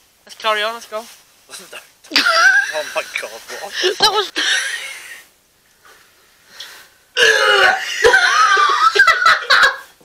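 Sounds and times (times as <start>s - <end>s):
man belching groan: 7.2s - 7.9s.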